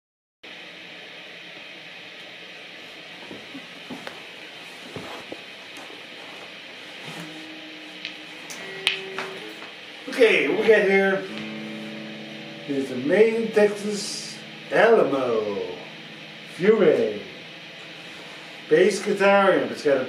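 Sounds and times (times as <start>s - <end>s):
guitar amp hiss: 3.2s - 20.0s
faint guitar notes: 7.0s - 20.0s.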